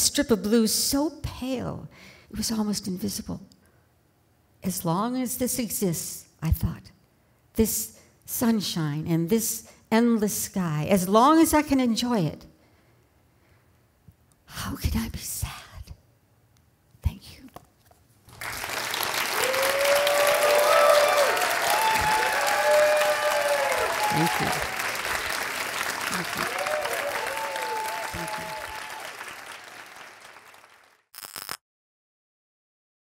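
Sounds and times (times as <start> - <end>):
audience applause with cheers: 18.3 - 31.1.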